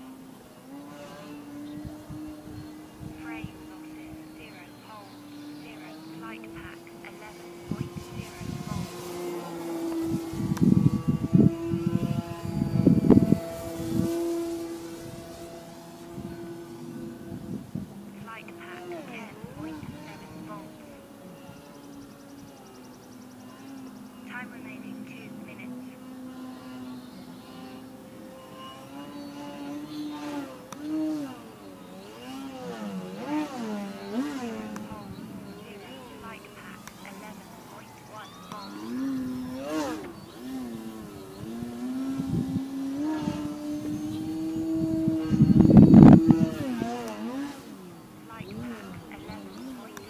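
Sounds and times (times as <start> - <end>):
model plane motor droning: 0.0 - 50.0
wind buffeting microphone: 0.1 - 50.0.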